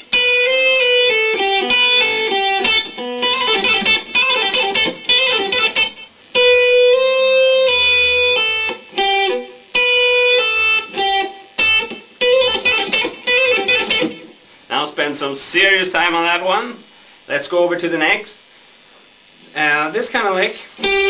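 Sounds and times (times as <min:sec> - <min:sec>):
electric guitar lick: 0:00.0 - 0:14.7, 0:20.7 - 0:21.0.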